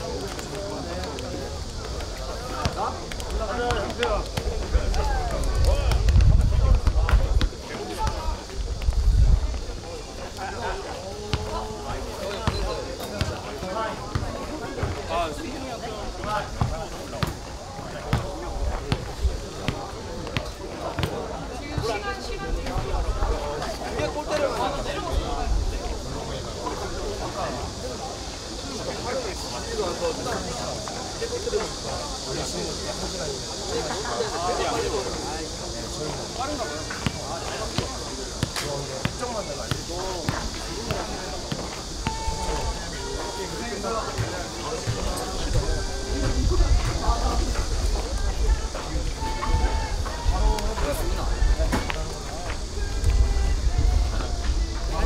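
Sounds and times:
voices talking in background: 0.0s - 55.0s.

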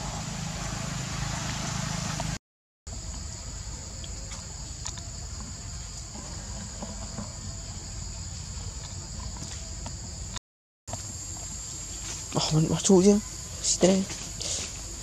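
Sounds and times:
low outdoor rumble: 0.0s - 10.4s
insects buzzing: 0.0s - 15.0s.

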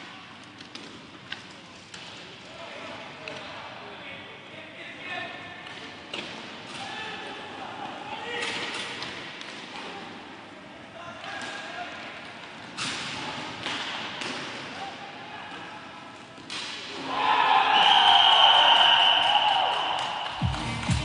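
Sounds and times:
arena noise: 2.5s - 21.0s
players shouting: 17.0s - 20.5s.

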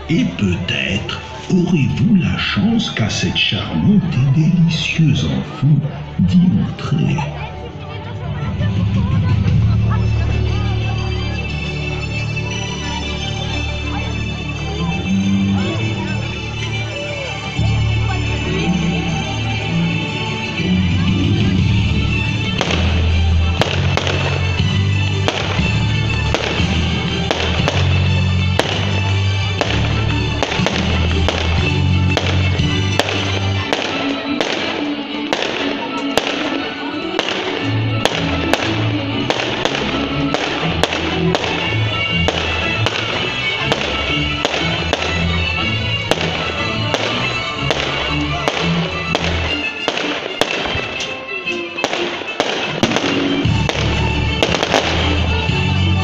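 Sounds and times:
fireworks bangs and crackles: 8.6s - 56.0s
music with strong bass: 13.9s - 51.2s, 51.8s - 56.0s.

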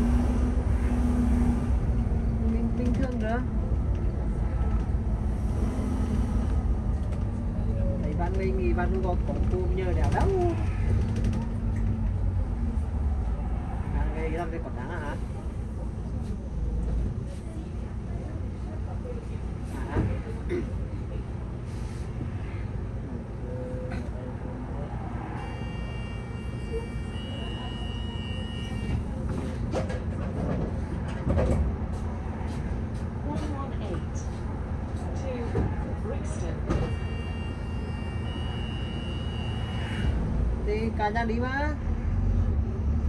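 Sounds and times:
bus engine rumble: 0.0s - 43.0s.

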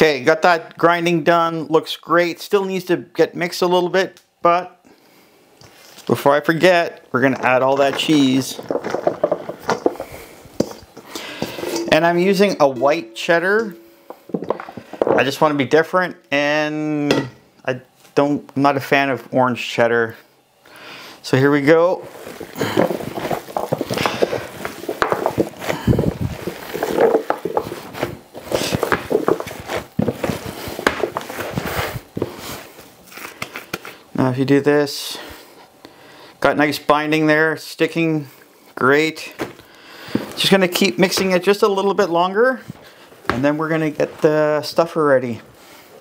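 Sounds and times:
cheese cubes clicking and sliding: 22.1s - 31.7s.

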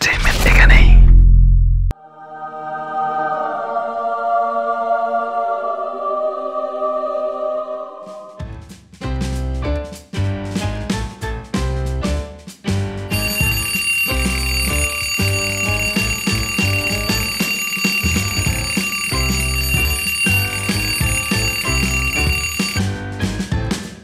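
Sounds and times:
background music with drum beat: 8.4s - 14.4s, 19.8s - 24.0s
alarm clock ringing: 13.1s - 23.0s.

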